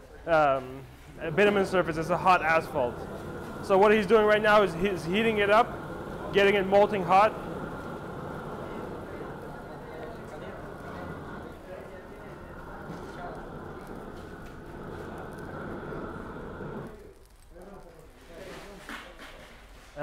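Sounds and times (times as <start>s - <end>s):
roofing torch flame roaring: 1.1s - 18.5s.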